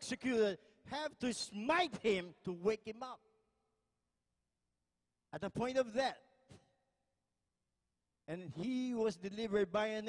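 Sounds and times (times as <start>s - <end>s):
man's amplified voice: 0.0s - 3.4s, 5.3s - 6.6s, 8.2s - 10.0s.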